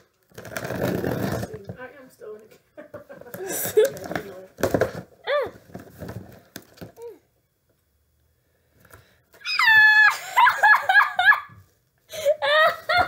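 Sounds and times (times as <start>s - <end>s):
person squealing excitedly: 9.4s - 11.5s.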